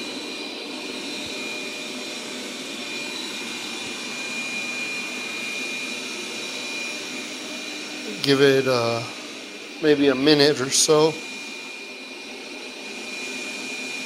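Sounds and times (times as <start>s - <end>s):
robot vacuum whirring: 0.0s - 14.0s.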